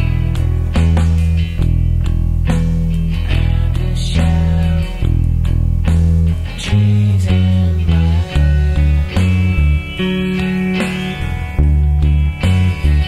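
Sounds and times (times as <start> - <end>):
electric bass guitar line: 0.0 - 13.0
rock band with guitars: 0.0 - 13.0.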